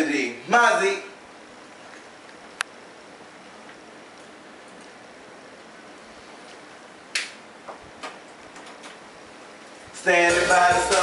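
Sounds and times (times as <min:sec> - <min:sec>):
faint room noise hiss: 0:00.0 - 0:11.0.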